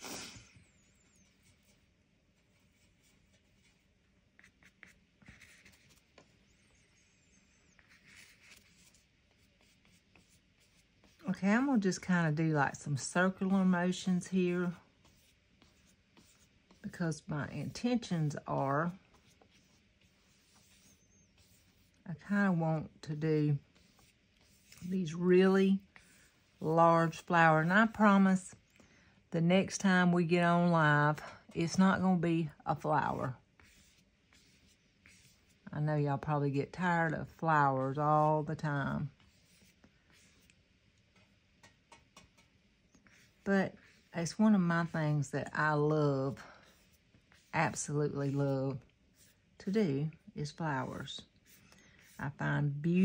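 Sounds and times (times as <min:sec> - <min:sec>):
paintbrush rubbing on paper: 0:00.0 - 0:28.6, 0:31.6 - 0:49.6, 0:50.5 - 0:53.0
woman speaking: 0:11.2 - 0:14.8, 0:16.8 - 0:19.0, 0:22.1 - 0:23.6, 0:24.8 - 0:25.9, 0:26.6 - 0:28.6, 0:29.3 - 0:33.4, 0:35.7 - 0:39.1, 0:43.4 - 0:46.6, 0:47.5 - 0:48.8, 0:49.6 - 0:51.2, 0:52.2 - 0:53.0.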